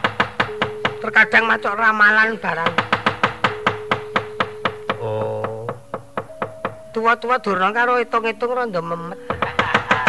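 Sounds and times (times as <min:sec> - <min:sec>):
wooden knocker striking: 0:00.0 - 0:01.6, 0:02.5 - 0:07.0, 0:09.2 - 0:10.0.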